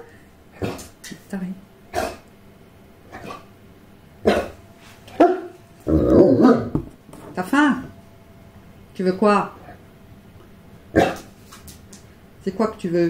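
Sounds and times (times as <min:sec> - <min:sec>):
dog grumbling: 0:00.5 - 0:00.9, 0:01.9 - 0:02.3, 0:05.8 - 0:06.7
dog whining: 0:05.2 - 0:06.8.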